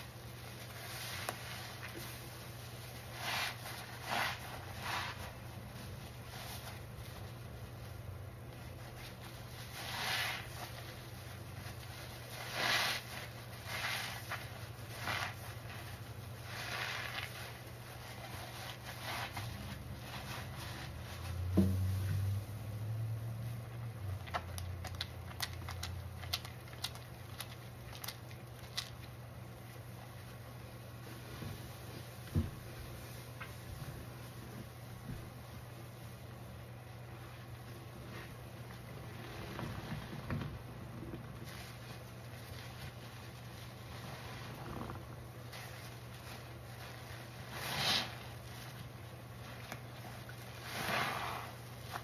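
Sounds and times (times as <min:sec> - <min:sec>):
wet sponge squelching: 0:00.0 - 0:22.6, 0:41.3 - 0:52.0.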